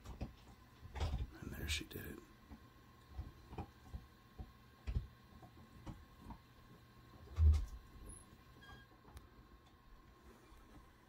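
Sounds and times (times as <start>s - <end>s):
faint clicks and knocks: 0.0s - 1.3s, 2.4s - 8.1s
faint steady hum: 0.0s - 11.0s.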